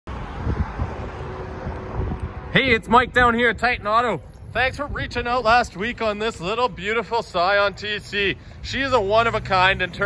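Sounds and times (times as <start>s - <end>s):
outdoor traffic noise: 0.1s - 10.0s.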